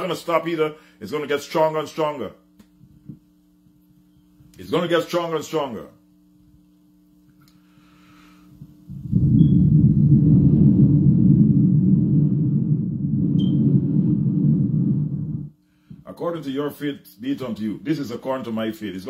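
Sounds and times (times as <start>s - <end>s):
faint mains hum: 0.0s - 19.0s
person blowing into microphone: 8.5s - 16.0s.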